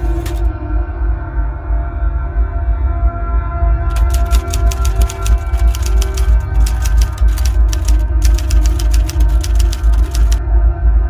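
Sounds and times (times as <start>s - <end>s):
typewriter keys clacking: 0.0s - 0.5s, 3.9s - 10.4s.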